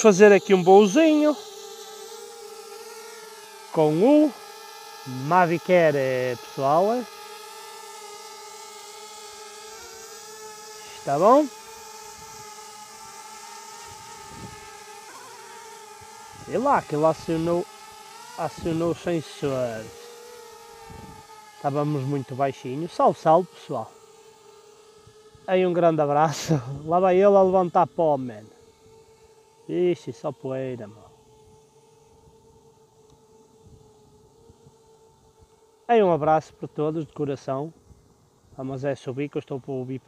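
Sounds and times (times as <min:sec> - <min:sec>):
drone propellers whining: 0:00.0 - 0:40.0.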